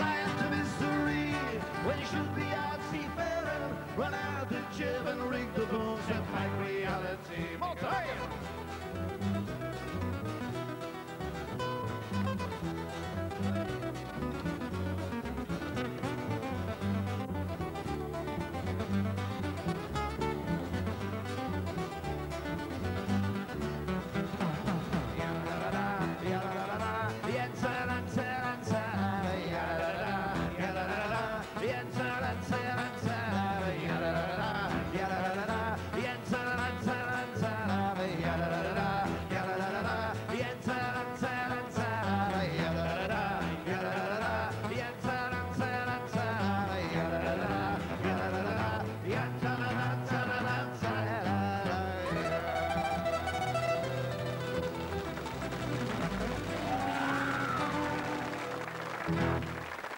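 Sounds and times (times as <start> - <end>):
man singing folk song: 0.0 - 58.6
double bass: 0.0 - 59.7
guitar: 0.0 - 59.9.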